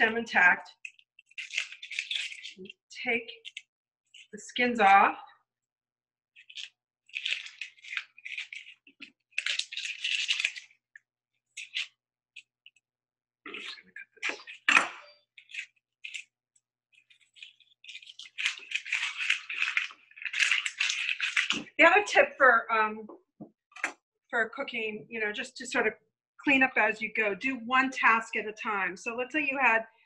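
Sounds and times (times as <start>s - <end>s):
onion skin crackling and rustling: 0.0s - 4.4s, 6.4s - 12.8s, 13.5s - 21.8s.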